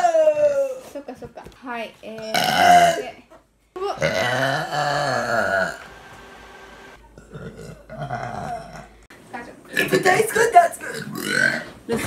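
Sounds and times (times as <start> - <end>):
girl burping: 2.2 - 3.2, 3.8 - 5.8, 7.1 - 9.0, 10.8 - 11.6.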